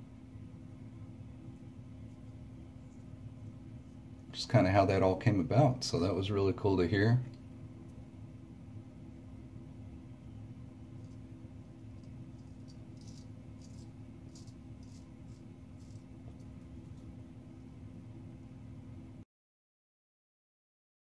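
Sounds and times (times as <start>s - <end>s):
steady low hum: 0.0s - 19.2s
straight razor scraping stubble: 11.9s - 17.1s.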